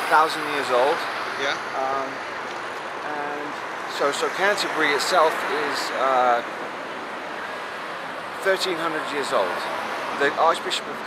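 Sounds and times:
road traffic hum: 0.0 - 11.0
man saying uh: 1.4 - 2.2, 3.1 - 3.6.

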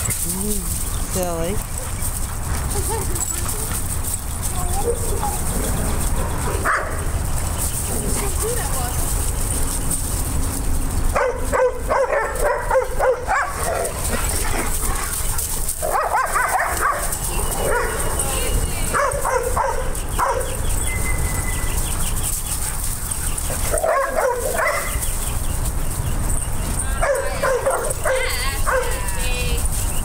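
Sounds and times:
dogs barking and yipping: 0.0 - 30.0.

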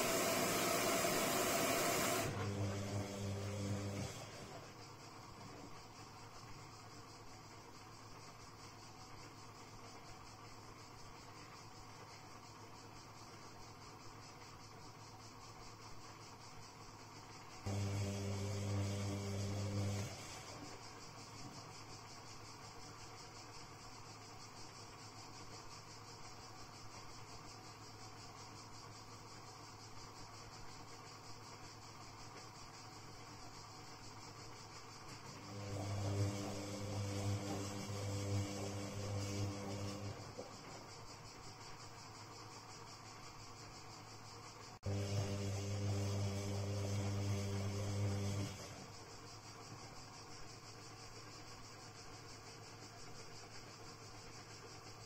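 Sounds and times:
washing machine drum motor humming: 0.0 - 5.4, 17.6 - 20.6.

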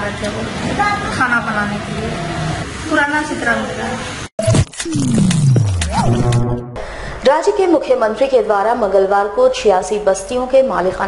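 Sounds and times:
logo sting music: 4.4 - 7.0
rising and falling tone: 4.4 - 7.1
sharp hits: 4.4 - 7.2
deep swoosh sliding down: 5.0 - 7.1.

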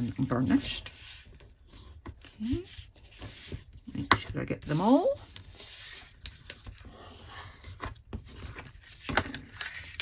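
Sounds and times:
paper rustling: 0.0 - 10.0.

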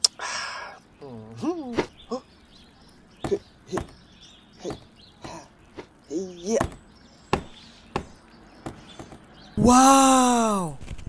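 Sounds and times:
sharp knocks: 3.2 - 4.0, 6.5 - 9.3.

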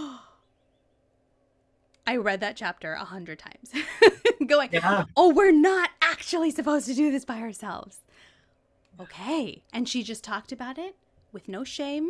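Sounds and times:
woman sighing oh: 0.0 - 0.4
faint steady hum: 0.0 - 12.0.

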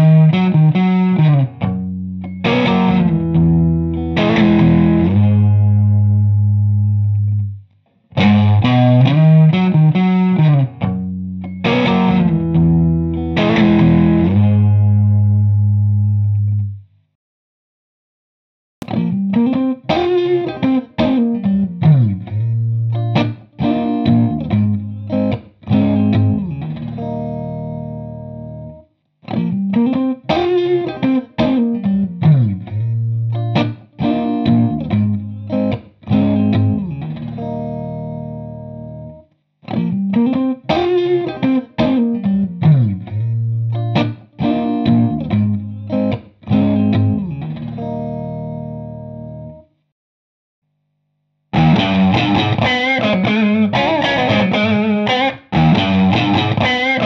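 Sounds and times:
electric guitar with chorus effect: 0.0 - 16.8, 18.8 - 49.8, 51.5 - 57.0.

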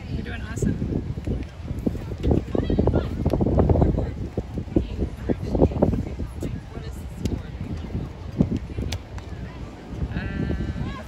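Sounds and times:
wind rumble on microphone: 0.0 - 11.0.

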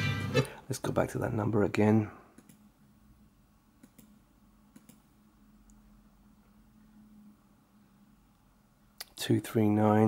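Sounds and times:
faint low hum: 0.0 - 10.0
computer mouse clicking: 2.4 - 2.6, 3.8 - 5.8.

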